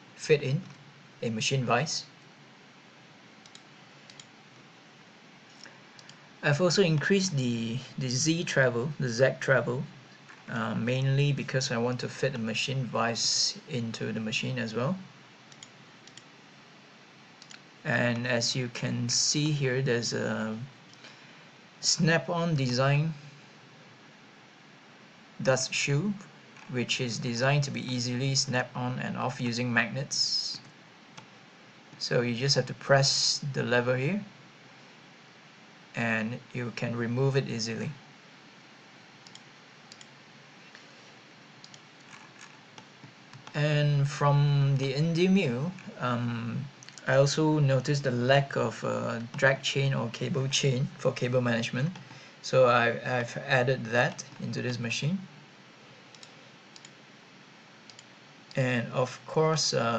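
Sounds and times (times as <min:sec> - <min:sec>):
low room hiss: 0:00.0 - 0:59.9
computer mouse clicks: 0:03.4 - 0:04.3, 0:05.5 - 0:06.2, 0:15.5 - 0:16.3, 0:17.4 - 0:17.7, 0:39.2 - 0:40.8, 0:41.6 - 0:43.6, 0:56.1 - 0:57.0, 0:57.9 - 0:58.1.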